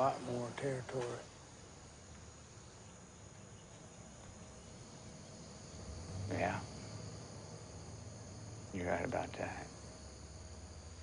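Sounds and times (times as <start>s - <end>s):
night insects chirping: 0.0s - 11.0s.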